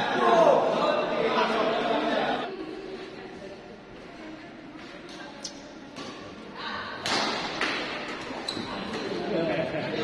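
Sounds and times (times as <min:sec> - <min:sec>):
voices in sports hall: 0:00.0 - 0:10.0.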